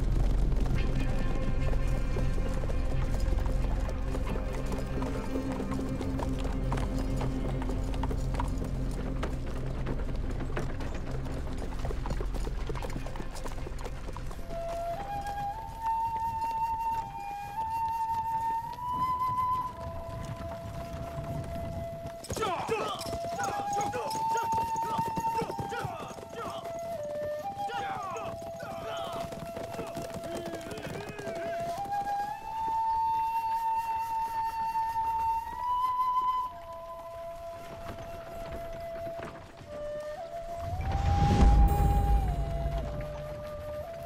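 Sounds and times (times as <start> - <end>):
slow background music: 0.0 - 22.3, 31.8 - 44.0
horses galloping hoofbeats: 0.0 - 44.0
horses neighing: 22.3 - 26.8, 27.6 - 31.9.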